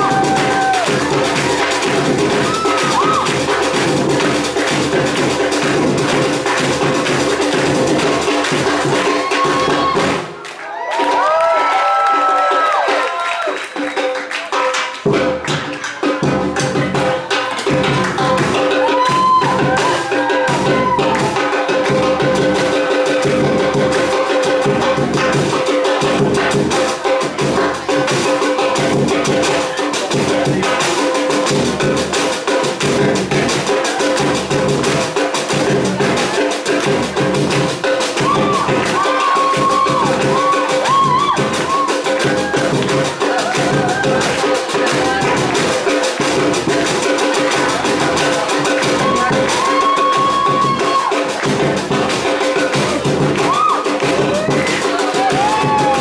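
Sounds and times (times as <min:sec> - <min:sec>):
deep drum beat: 0:00.0 - 0:10.4, 0:15.0 - 0:56.0
samba music with percussion: 0:00.0 - 0:56.0.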